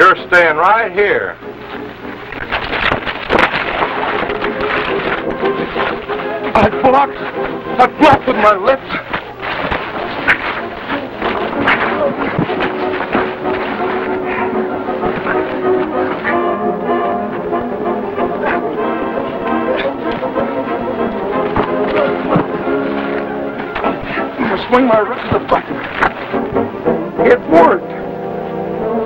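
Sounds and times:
scuffling: 0:01.2 - 0:28.1
orchestral music with brass: 0:03.6 - 0:29.0.

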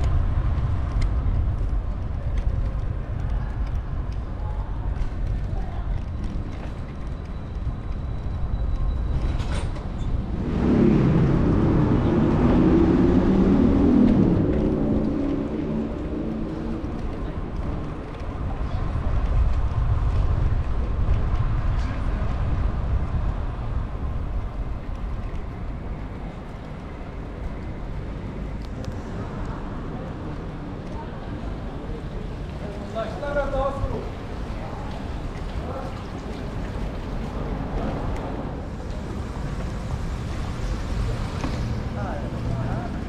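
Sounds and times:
traffic rumble: 0:00.0 - 0:43.0
vehicle passing close: 0:10.1 - 0:17.6
people's voices: 0:25.8 - 0:43.0.

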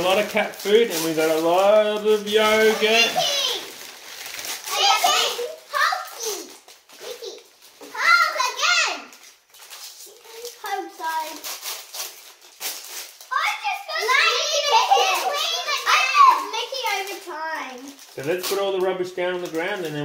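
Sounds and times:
foil packets crinkling: 0:00.0 - 0:20.0
children exclaiming: 0:02.5 - 0:03.8, 0:04.7 - 0:09.2, 0:13.3 - 0:17.8.

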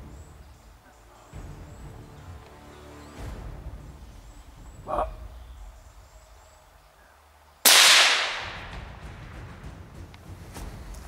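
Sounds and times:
rifle shot with echo: 0:07.6 - 0:09.0.

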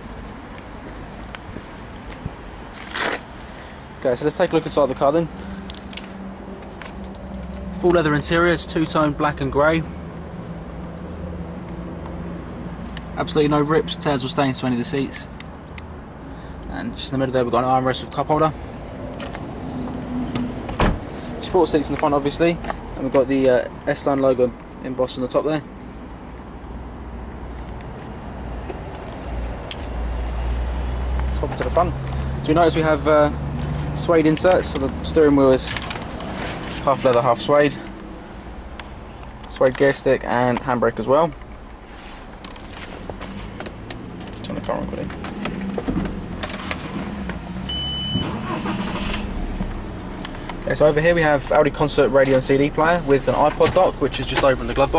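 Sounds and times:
high-pitched dashboard beep: 0:47.7 - 0:48.6.

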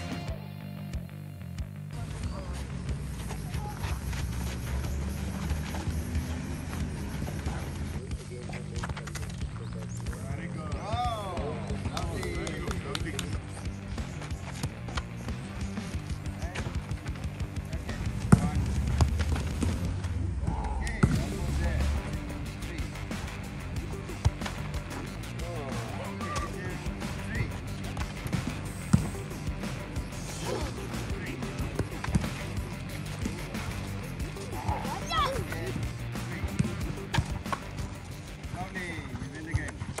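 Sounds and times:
ball kicked on dirt court: 0:01.9 - 0:21.8, 0:24.0 - 0:25.1, 0:27.6 - 0:29.8, 0:31.5 - 0:40.0
foot kicking a ball: 0:18.1 - 0:20.2, 0:27.9 - 0:29.2
children calling: 0:34.2 - 0:35.8.

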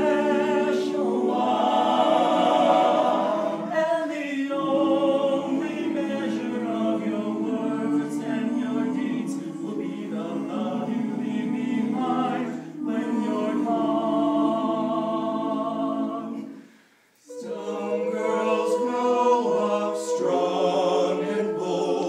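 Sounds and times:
men singing a cappella harmony: 0:00.0 - 0:16.6, 0:17.2 - 0:22.0.

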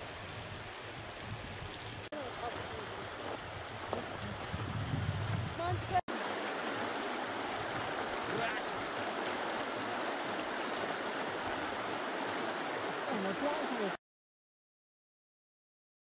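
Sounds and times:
stream rushing over gravel: 0:00.0 - 0:14.0.

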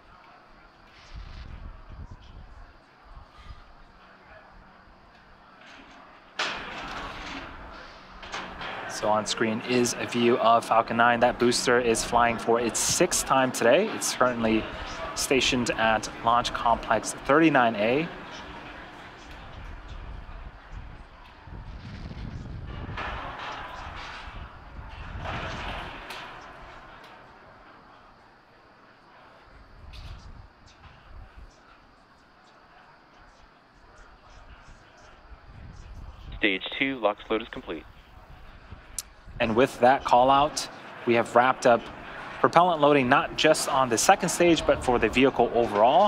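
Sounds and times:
wind rumble on microphone: 0:01.0 - 0:03.9, 0:18.2 - 0:27.0, 0:29.6 - 0:31.6, 0:33.9 - 0:39.6.

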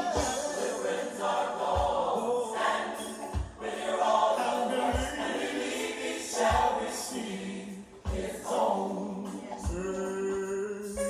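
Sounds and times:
gospel choir singing over music: 0:00.0 - 0:11.0.

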